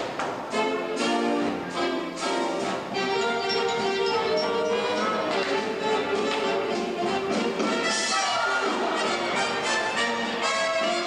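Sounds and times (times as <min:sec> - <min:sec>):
orchestra playing dance music: 0:00.6 - 0:11.0.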